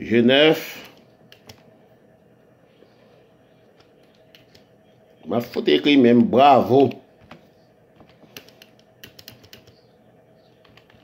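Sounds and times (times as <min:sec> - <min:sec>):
keyboard typing clicks: 0:01.3 - 0:01.6, 0:08.0 - 0:09.8, 0:10.6 - 0:11.0.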